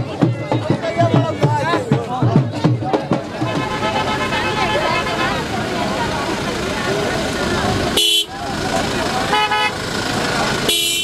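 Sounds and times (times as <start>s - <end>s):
crowd of men talking: 0.0s - 11.0s
car horn tooting: 3.4s - 5.5s, 8.0s - 8.4s, 9.3s - 9.8s, 10.6s - 11.0s.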